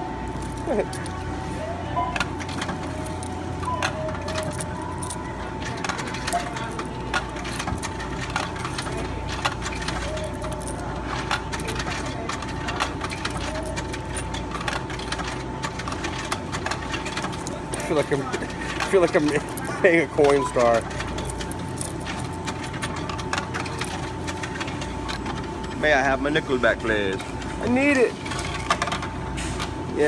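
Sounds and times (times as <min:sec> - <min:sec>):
coins clinking: 0:00.2 - 0:01.4, 0:02.0 - 0:29.1.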